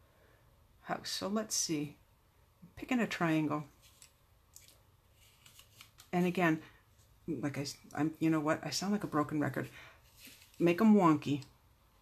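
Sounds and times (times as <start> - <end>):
paper rustling: 3.7 - 6.3, 10.0 - 10.7.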